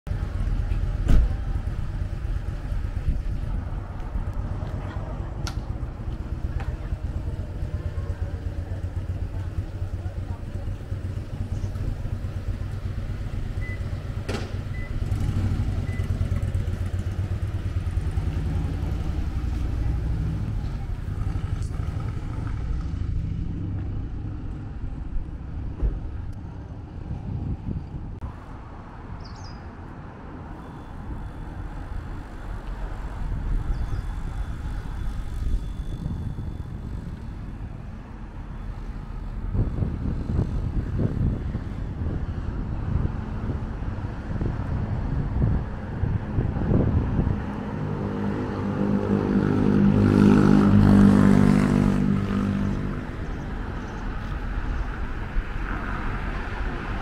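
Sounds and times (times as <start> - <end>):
low vehicle rumble: 0.1 - 57.0.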